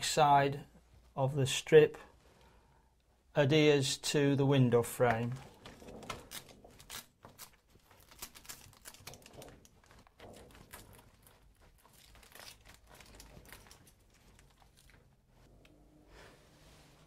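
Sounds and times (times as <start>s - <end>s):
plastic crinkling: 5.2s - 15.5s.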